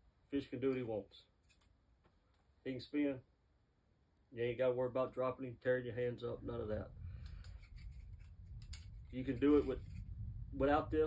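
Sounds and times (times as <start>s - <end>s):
fishing stringer clicks and rubs: 1.4s - 1.8s, 7.2s - 10.2s
low steady rumble: 5.6s - 11.0s.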